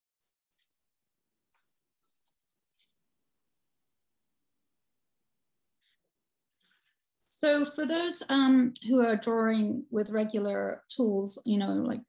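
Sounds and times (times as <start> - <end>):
colored pencil scratching on paper: 1.5 - 3.0.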